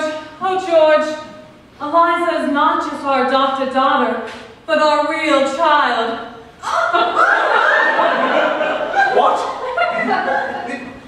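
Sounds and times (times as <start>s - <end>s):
audience laughing: 6.7s - 11.0s.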